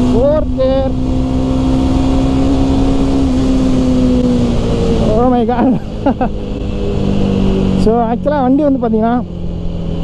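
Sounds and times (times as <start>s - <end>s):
motorcycle engine at steady revs: 0.0s - 10.0s
road and wind noise: 0.0s - 10.0s.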